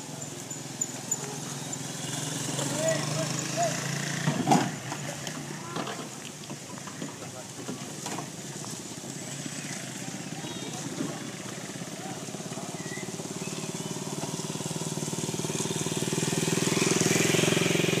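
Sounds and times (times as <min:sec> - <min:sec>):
small engine running: 0:00.0 - 0:04.7, 0:09.3 - 0:18.0.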